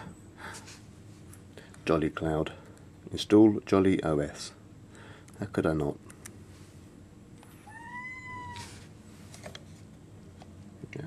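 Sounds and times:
cat meowing: 0:07.6 - 0:08.8.

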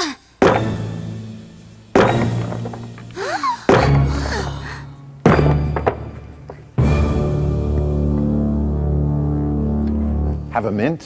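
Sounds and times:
heavy axe blows: 0:00.4 - 0:01.1, 0:01.9 - 0:03.0, 0:03.7 - 0:04.5.

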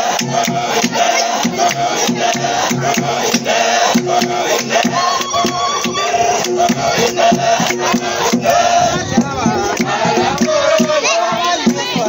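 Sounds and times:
men singing: 0:00.0 - 0:12.0
rhythmic hand clapping: 0:00.0 - 0:12.0.

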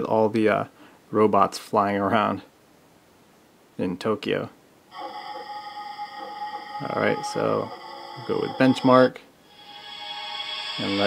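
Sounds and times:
held synth chord: 0:04.9 - 0:11.0.

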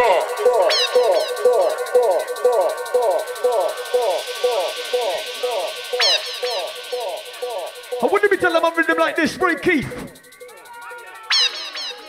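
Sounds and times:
electronic tones: 0:00.0 - 0:12.0.

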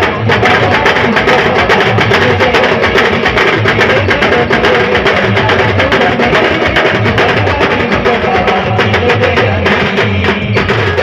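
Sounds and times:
fast steady drum beat: 0:00.0 - 0:11.0.

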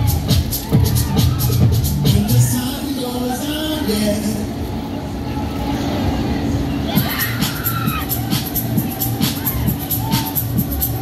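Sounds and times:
fairground ride running noise: 0:00.0 - 0:11.0.

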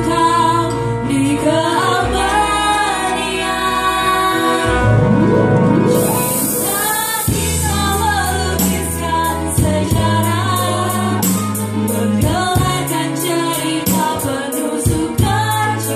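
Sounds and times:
women singing into microphones: 0:00.0 - 0:05.3, 0:06.0 - 0:15.9
electronic keyboard: 0:00.0 - 0:15.9
bass line with regular beat: 0:05.9 - 0:13.2.

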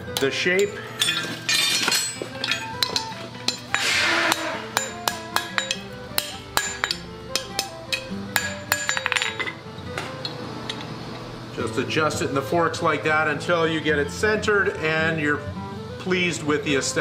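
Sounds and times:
background music: 0:00.0 - 0:17.0
hammer striking anvil: 0:00.2 - 0:09.6.

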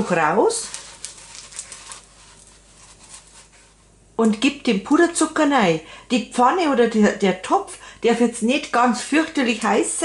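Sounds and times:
paper towel rubbing a pot: 0:00.0 - 0:04.0.

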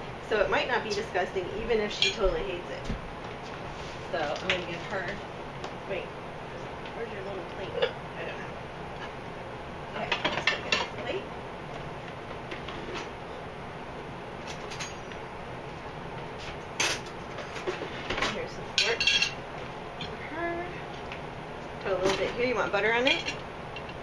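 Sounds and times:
plates and fork clinking: 0:18.8 - 0:19.4.

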